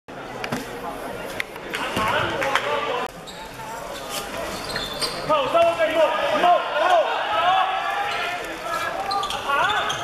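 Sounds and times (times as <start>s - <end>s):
players shouting: 5.3s - 10.0s.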